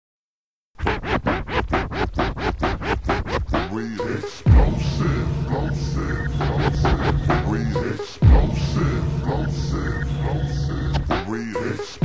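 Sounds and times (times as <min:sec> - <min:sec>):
turntable record scratching: 0:00.8 - 0:12.0.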